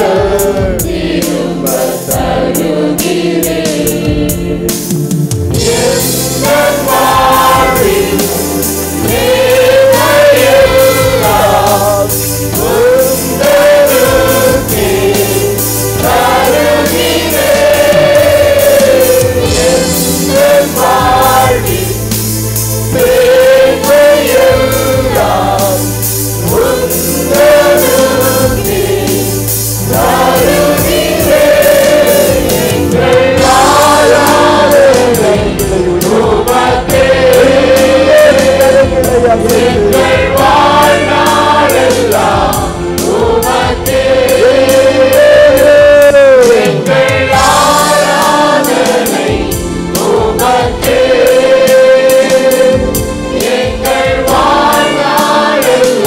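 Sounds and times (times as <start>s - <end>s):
congregation singing: 0.0s - 56.0s
percussion beat: 0.0s - 56.0s.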